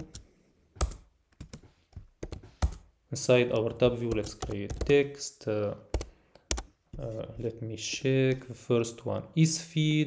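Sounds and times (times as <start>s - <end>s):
typing on computer keyboard: 0.8s - 2.9s, 3.5s - 5.0s, 5.9s - 6.7s.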